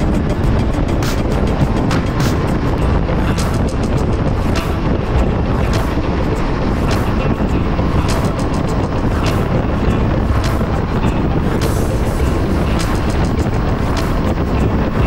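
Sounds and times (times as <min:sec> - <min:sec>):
background music with a beat: 0:00.0 - 0:15.0
wind noise: 0:00.0 - 0:15.0.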